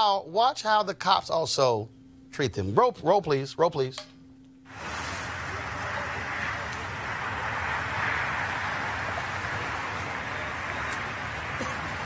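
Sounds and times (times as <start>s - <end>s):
crowd din: 4.7s - 12.0s.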